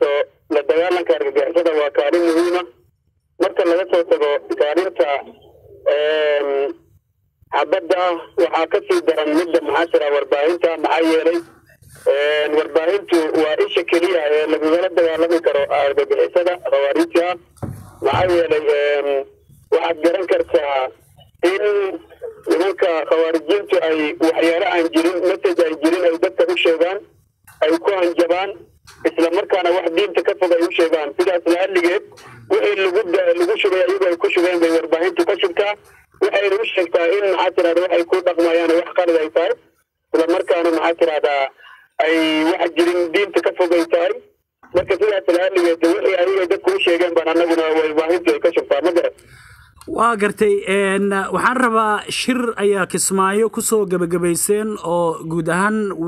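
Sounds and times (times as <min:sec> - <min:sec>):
man speaking over telephone: 0:00.0 - 0:56.0.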